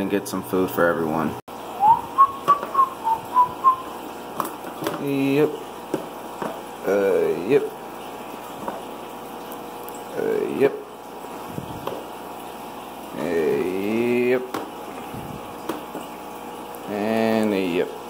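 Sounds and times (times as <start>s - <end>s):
person whistling: 1.8s - 3.9s.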